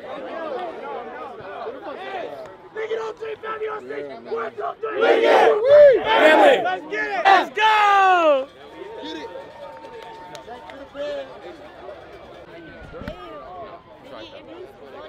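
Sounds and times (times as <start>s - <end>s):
scattered talk and chatter: 0.0s - 15.0s
group shouting a cheer: 4.6s - 8.4s.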